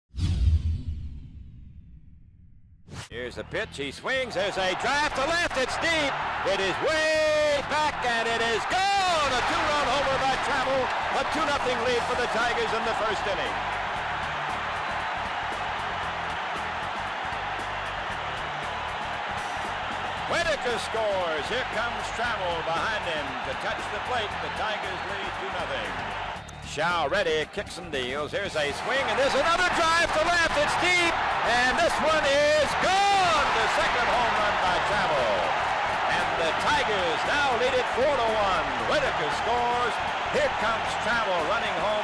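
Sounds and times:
music: 3.0 - 42.0
crowd cheering roar: 4.2 - 26.7, 28.4 - 42.0.

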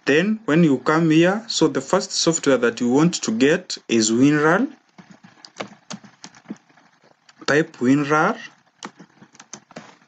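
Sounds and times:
keyboard typing clicks: 5.0 - 7.5, 8.8 - 9.9.

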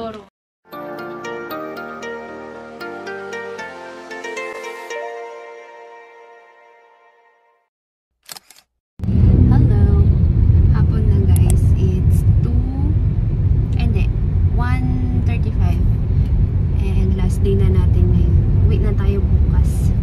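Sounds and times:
car engine and tyres rumbling: 9.0 - 20.0
woman talking: 9.4 - 13.0, 13.8 - 15.9, 16.8 - 20.0.

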